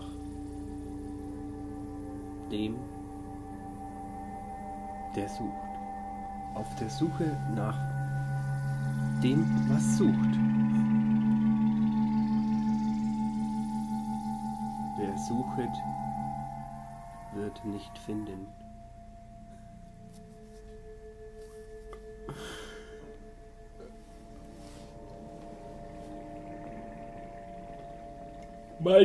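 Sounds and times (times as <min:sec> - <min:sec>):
drone music of ringing tones: 0:00.0 - 0:29.0
low hum: 0:00.0 - 0:29.0.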